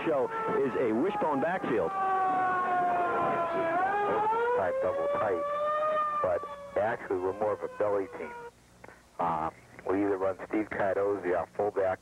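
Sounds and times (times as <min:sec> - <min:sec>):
man commentating: 0:00.0 - 0:02.0, 0:02.6 - 0:05.5, 0:06.2 - 0:08.4, 0:09.2 - 0:12.0
siren wailing: 0:00.0 - 0:08.5.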